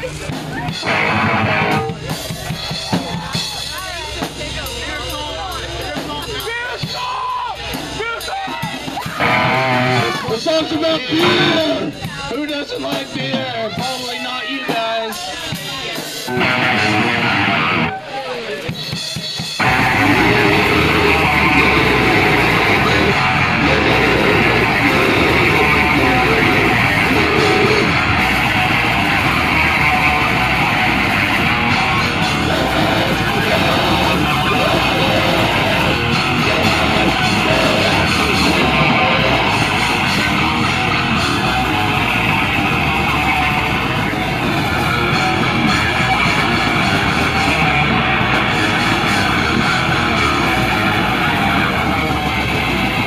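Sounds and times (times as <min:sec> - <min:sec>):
live rock band playing: 0:00.0 - 0:53.0.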